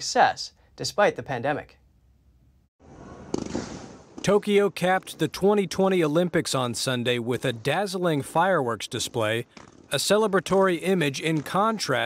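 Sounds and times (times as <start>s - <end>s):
firework bang: 2.9s - 5.2s
fireworks crackling: 3.3s - 12.0s.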